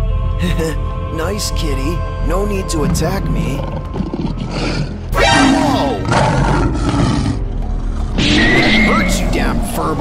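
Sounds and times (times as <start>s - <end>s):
monster roaring: 3.6s - 7.5s.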